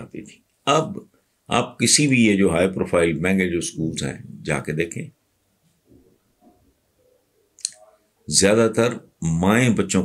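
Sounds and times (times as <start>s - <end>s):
faint mouth clicks: 7.6s - 7.8s.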